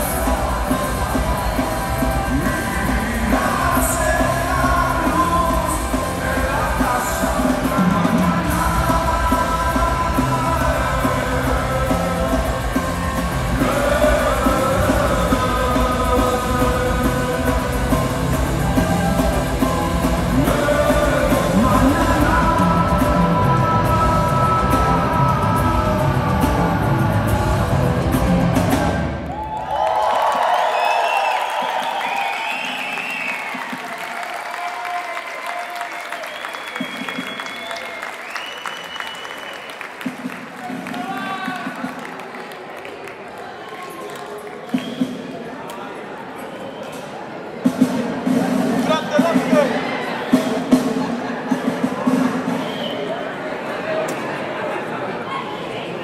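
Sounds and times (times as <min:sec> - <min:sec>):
person singing: 0:00.0 - 0:29.0
live rock band: 0:00.0 - 0:29.4
audience cheering and applauding: 0:00.0 - 0:45.8.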